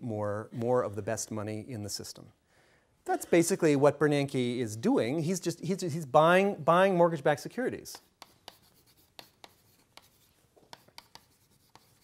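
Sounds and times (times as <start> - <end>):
chalk tapping and scratching: 7.8 - 12.0.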